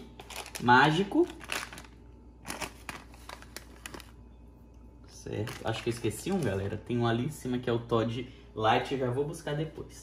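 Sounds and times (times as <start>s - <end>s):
plastic packet crinkling: 0.0s - 4.3s, 5.2s - 6.9s.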